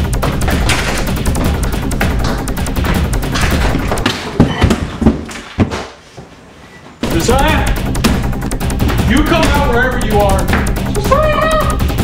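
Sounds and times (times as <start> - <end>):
loud busy soundtrack: 0.0 - 4.4, 7.0 - 12.0
rapid repeated cracks: 0.0 - 4.4, 7.0 - 12.0.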